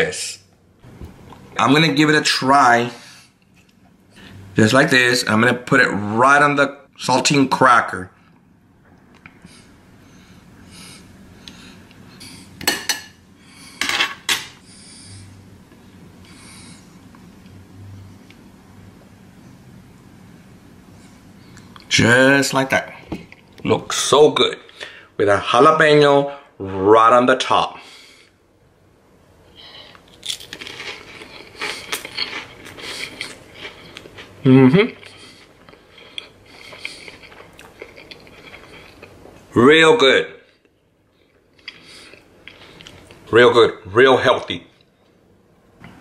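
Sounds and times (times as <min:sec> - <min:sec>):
cracker crunching while chewed: 0:29.9 - 0:39.4, 0:41.3 - 0:43.2.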